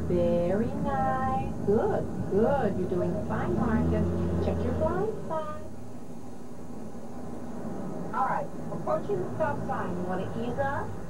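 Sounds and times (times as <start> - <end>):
car engine and road hum: 0.0 - 11.0.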